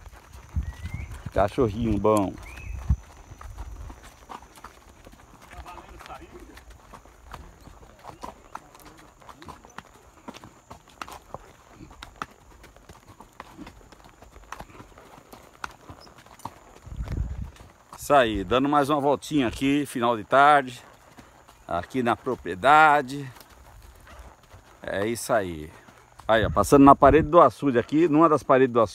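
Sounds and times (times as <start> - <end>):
horses' hooves clip-clopping on dirt: 0.0 - 28.9.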